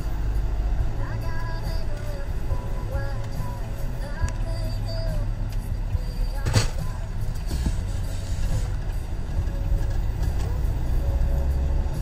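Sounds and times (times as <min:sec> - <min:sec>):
car cabin road and engine rumble: 0:00.0 - 0:12.0
faint music: 0:00.0 - 0:12.0.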